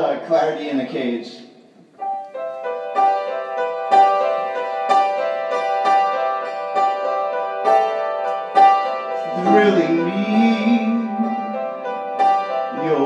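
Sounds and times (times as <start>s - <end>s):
upright piano broken chords: 2.0s - 13.0s.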